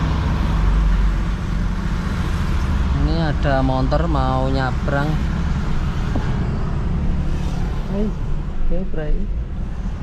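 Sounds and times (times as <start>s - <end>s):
car engine low rumble: 0.0s - 10.0s
road traffic: 0.0s - 10.0s.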